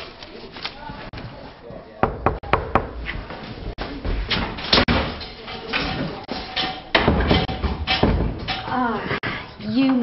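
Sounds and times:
sharp knocks: 2.0 - 3.0.

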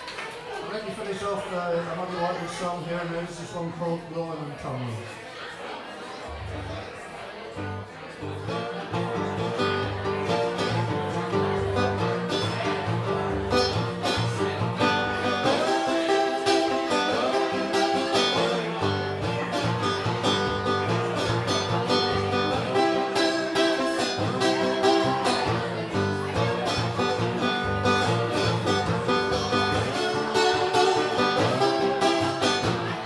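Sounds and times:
acoustic guitar strumming: 6.3 - 33.0.

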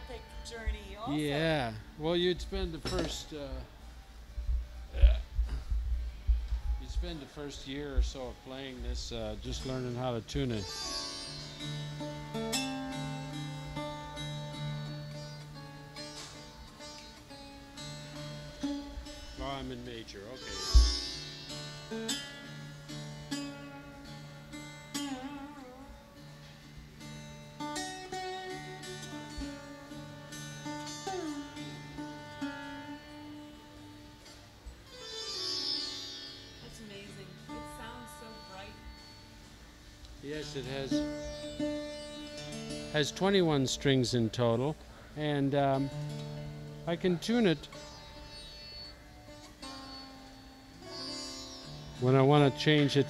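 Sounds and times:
slide guitar plucked notes: 0.0 - 53.0
sharp thump: 20.7 - 21.1
drone of sympathetic strings: 34.9 - 53.0.

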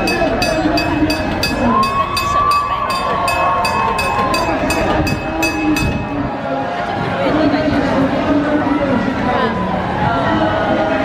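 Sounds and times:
trolley bell clanging: 0.0 - 6.3.

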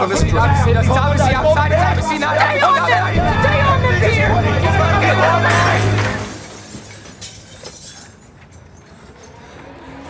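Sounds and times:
men shouting over one another: 0.0 - 6.3.

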